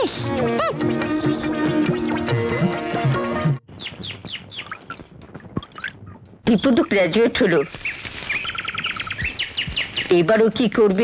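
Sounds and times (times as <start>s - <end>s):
bird singing trill: 0.8s - 4.9s, 7.5s - 10.2s.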